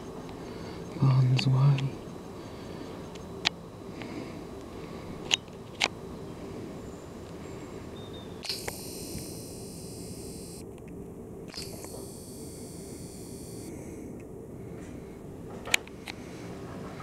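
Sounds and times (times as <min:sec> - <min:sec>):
high hiss: 0:08.4 - 0:10.6
camera handling rumble: 0:08.4 - 0:12.6.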